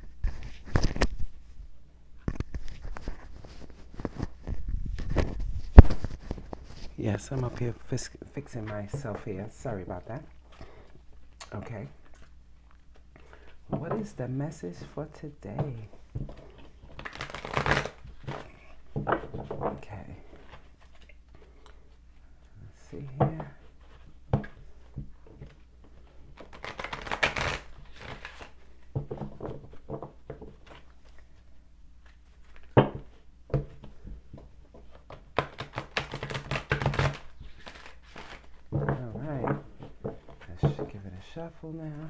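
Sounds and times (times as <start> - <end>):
cards being shuffled: 0.0 - 1.3, 2.2 - 7.9, 15.6 - 21.6, 25.4 - 28.7, 34.7 - 41.2.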